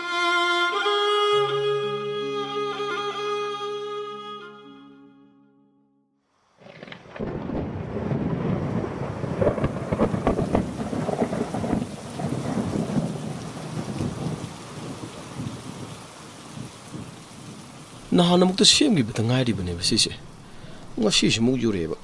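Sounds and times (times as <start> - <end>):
thunder cracks: 6.6 - 16.0
rain: 6.6 - 22.0.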